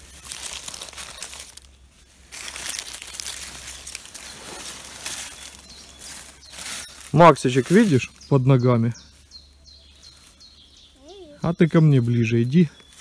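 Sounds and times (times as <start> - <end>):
dry leaves rustling: 0.0 - 13.0.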